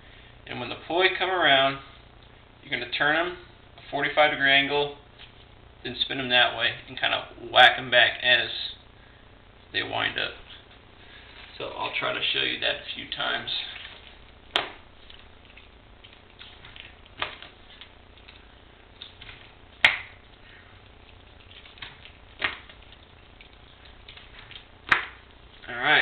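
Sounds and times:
faint movement noise: 0:00.0 - 0:26.0.

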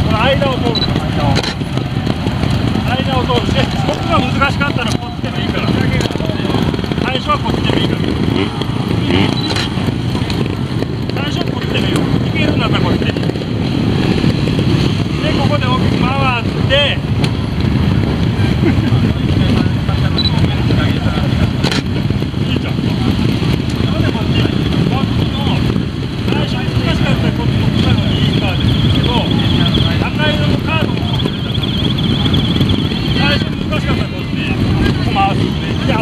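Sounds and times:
instructor talking: 0:00.0 - 0:01.6, 0:02.8 - 0:09.3, 0:26.3 - 0:36.0
motorcycle engines running: 0:00.0 - 0:36.0.

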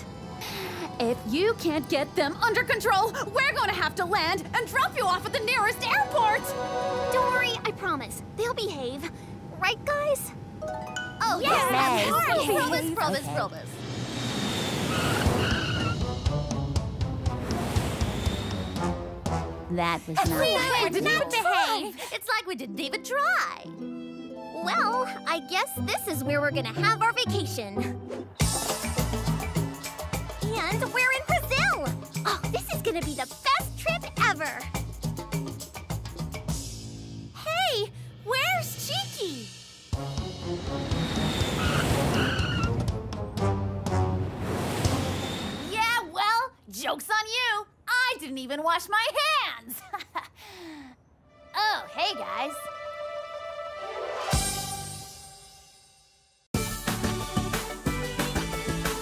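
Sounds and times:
plane skidding to a stop: 0:13.8 - 0:16.2, 0:17.4 - 0:19.0, 0:40.7 - 0:43.0, 0:44.4 - 0:45.8
high tire screech: 0:14.0 - 0:16.1, 0:40.8 - 0:42.9
tyre squeals: 0:14.5 - 0:16.0, 0:41.1 - 0:42.9
airplane whoosh: 0:17.0 - 0:21.0, 0:39.6 - 0:45.9
background music with beat: 0:28.4 - 0:36.8, 0:56.6 - 0:59.0.

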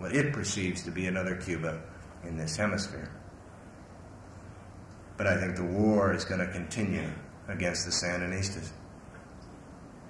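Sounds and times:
tape hiss: 0:00.0 - 0:10.0.

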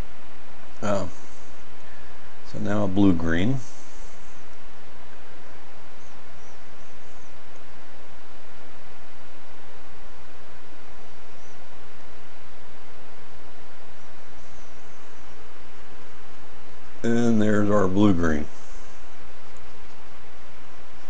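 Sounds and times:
low hum: 0:00.0 - 0:21.0
steady hiss: 0:00.0 - 0:21.0.

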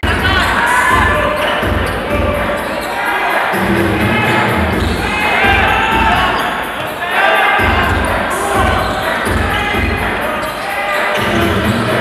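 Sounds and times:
crowd noise: 0:00.0 - 0:12.0
sneaker squeaks: 0:00.2 - 0:03.4, 0:04.7 - 0:12.0.

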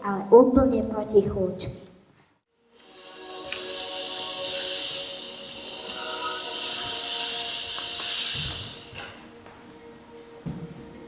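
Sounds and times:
soft background music: 0:02.5 - 0:11.0
fog machine hissing: 0:02.7 - 0:09.3.

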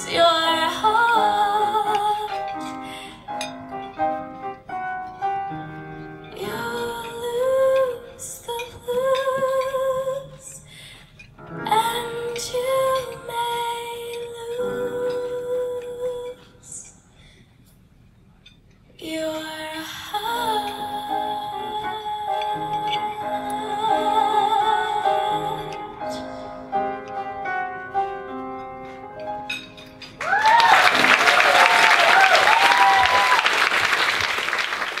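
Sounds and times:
woman singing into a microphone: 0:00.0 - 0:03.3, 0:06.3 - 0:17.0, 0:19.0 - 0:27.0
cheering whoops: 0:30.2 - 0:34.3
audience applause: 0:30.2 - 0:35.0.

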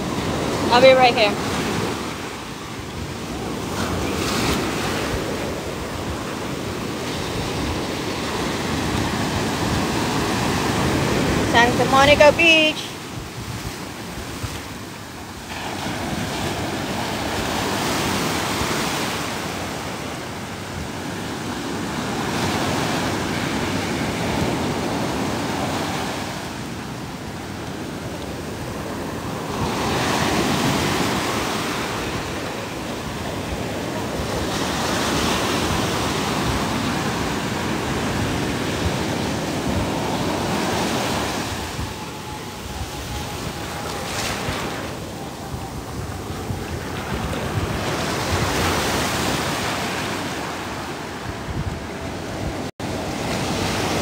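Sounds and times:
waves breaking: 0:00.0 - 0:54.0
wind buffeting microphone: 0:00.0 - 0:54.0.

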